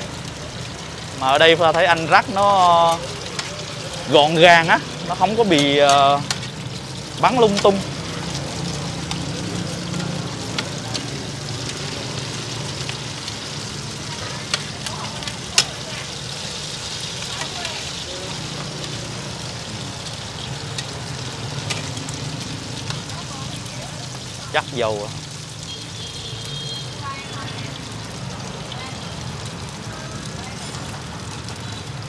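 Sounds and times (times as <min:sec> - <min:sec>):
food sizzling in oil: 0:00.0 - 0:32.0.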